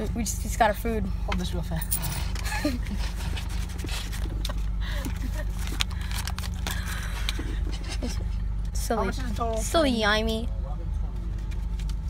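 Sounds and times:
rustles and clicks of handling: 1.8s - 9.6s, 11.1s - 12.0s.

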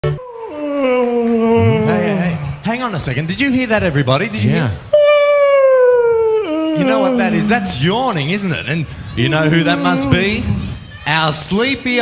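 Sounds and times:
man yawning: 0.0s - 2.6s, 5.0s - 7.8s.

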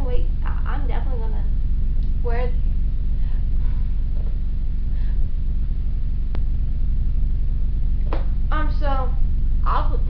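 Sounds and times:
low background rumble and hum: 0.0s - 10.0s.

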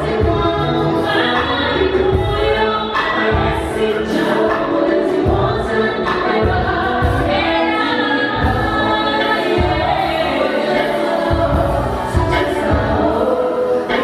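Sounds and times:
live band music: 0.0s - 14.0s
voices singing together: 0.0s - 14.0s
woman singing lead: 0.0s - 14.0s.

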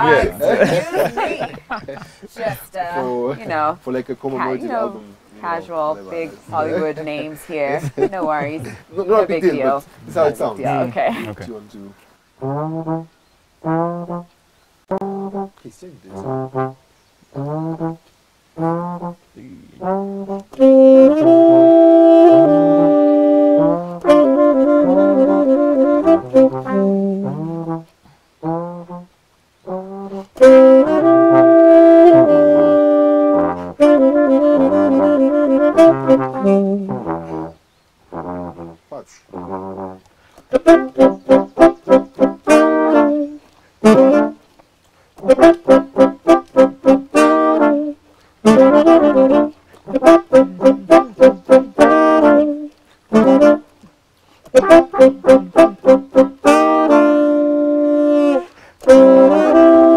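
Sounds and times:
horn trio playing: 0.0s - 44.6s, 45.2s - 53.9s, 54.5s - 59.9s.

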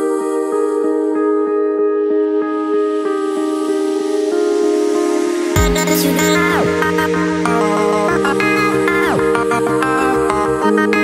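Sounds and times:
sustained synth chord: 0.0s - 11.0s.

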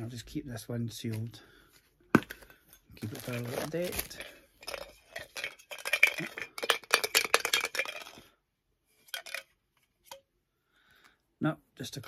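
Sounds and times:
plastic packaging crinkling: 3.0s - 6.9s.

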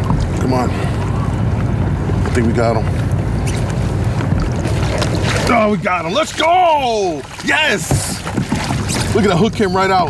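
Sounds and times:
wind rumble on microphone: 0.0s - 5.8s
fish splashing in water: 3.4s - 6.5s, 7.1s - 9.4s.

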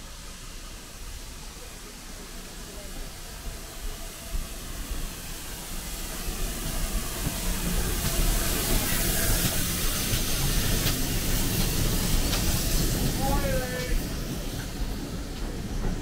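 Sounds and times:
steam locomotive hiss: 0.0s - 16.0s
sharp knocks of train: 6.1s - 16.0s.

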